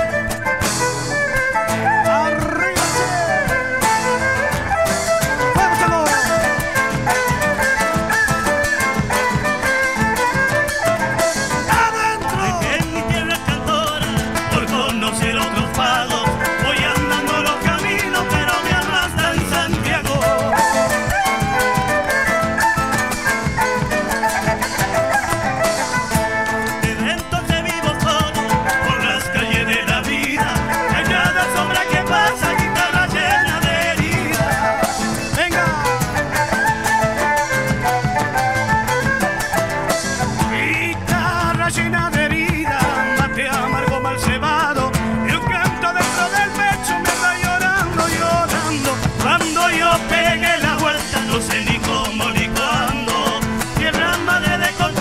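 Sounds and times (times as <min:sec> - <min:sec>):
live folk group playing dance tune: 0:00.0 - 0:55.0.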